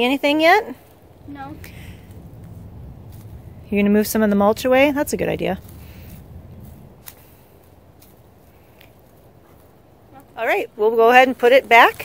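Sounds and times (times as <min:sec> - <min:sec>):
rustling of dry mulch and leaves: 0:00.0 - 0:12.0.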